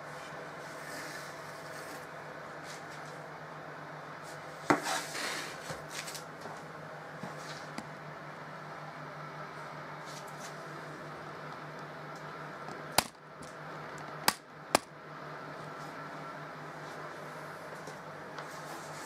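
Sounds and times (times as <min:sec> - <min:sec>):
fan oven humming: 0:00.0 - 0:19.0.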